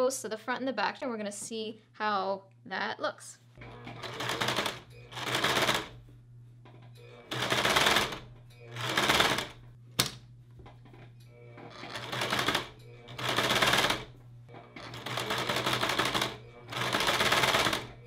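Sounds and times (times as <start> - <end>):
sewing machine stitching: 3.6 - 5.9, 7.1 - 9.6, 11.5 - 18.0.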